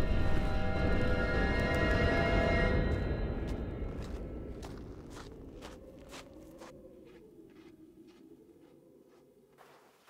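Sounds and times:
footsteps on sandy gravel: 0:02.9 - 0:10.0.

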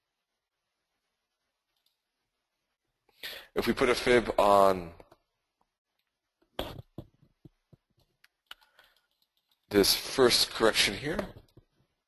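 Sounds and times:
computer mouse and keyboard clicks: 0:06.6 - 0:09.7.

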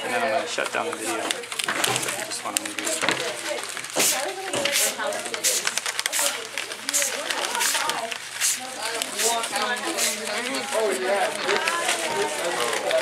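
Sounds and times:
children talking: 0:00.0 - 0:13.0
spray bottle squirts: 0:04.0 - 0:10.2.

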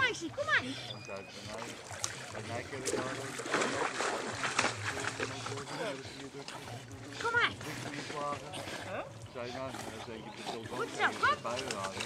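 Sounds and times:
water splashing around swimming dog: 0:00.0 - 0:12.0.

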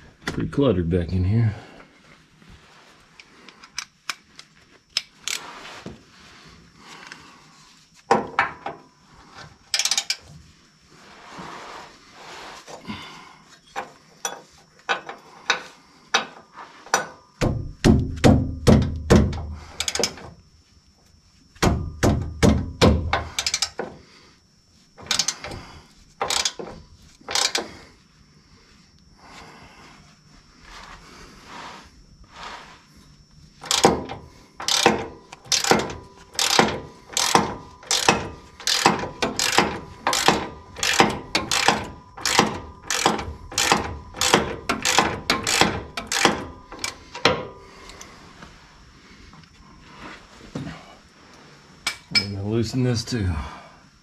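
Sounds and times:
ratchet clicks: 0:09.7 - 0:10.2, 0:19.7 - 0:20.2, 0:23.1 - 0:23.8, 0:25.0 - 0:25.6, 0:26.2 - 0:26.7, 0:27.3 - 0:27.7, 0:33.6 - 0:48.0
wrench clicking and clinking on metal: 0:09.7 - 0:10.2, 0:19.3 - 0:20.3, 0:23.1 - 0:23.9, 0:25.0 - 0:25.6, 0:26.2 - 0:27.7, 0:33.6 - 0:48.0.

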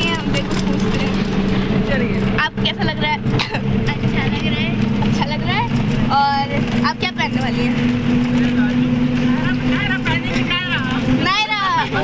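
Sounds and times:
bus engine drone: 0:00.0 - 0:12.0
road noise: 0:00.0 - 0:12.0
voices talking: 0:00.0 - 0:12.0.

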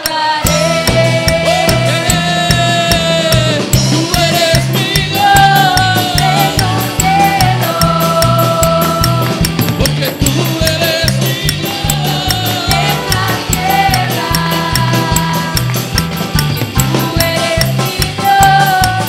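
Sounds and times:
drum kit: 0:00.0 - 0:19.0
electric bass guitar: 0:00.0 - 0:19.0
electric guitar: 0:00.0 - 0:19.0
keyboard: 0:00.0 - 0:19.0.

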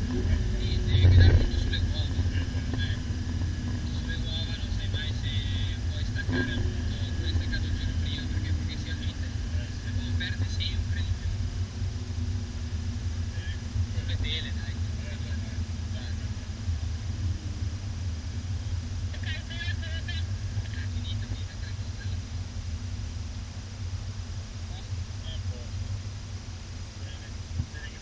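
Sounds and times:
car engine rumbling inside cabin: 0:00.0 - 0:28.0.

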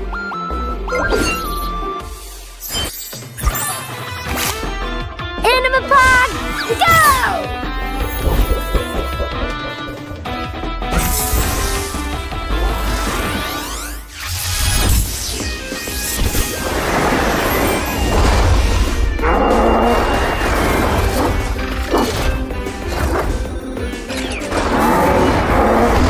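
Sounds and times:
cartoon music: 0:05.4 - 0:10.5
crashing and banging effects: 0:14.4 - 0:23.4.

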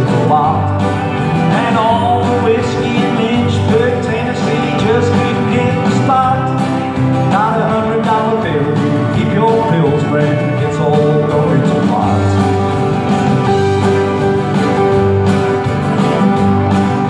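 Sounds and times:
man singing into a microphone: 0:00.0 - 0:12.6
strummed acoustic guitar: 0:00.0 - 0:17.0.

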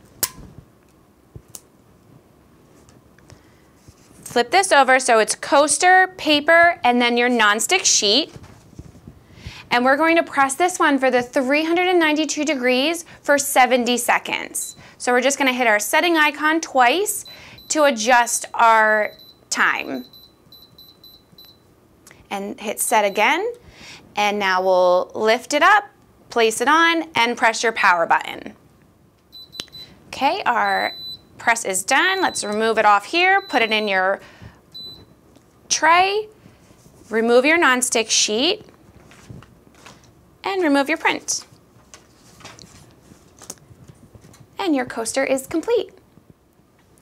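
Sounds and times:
control panel beeping: 0:29.4 - 0:29.8.

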